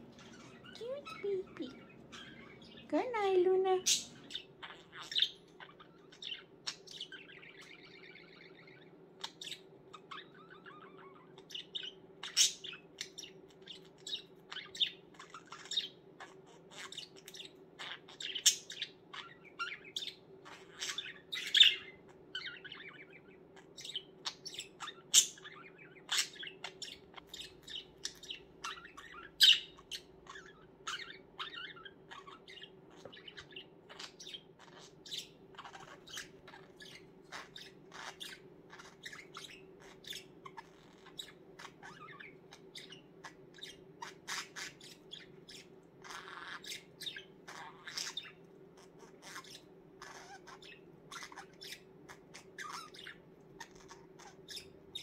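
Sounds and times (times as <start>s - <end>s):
faint steady hum: 0.0s - 55.0s
budgerigar chirping and warbling: 0.1s - 55.0s.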